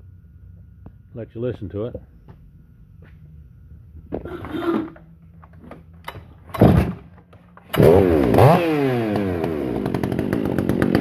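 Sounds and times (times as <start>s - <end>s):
chainsaw shifted on steel bench: 4.1s - 7.9s.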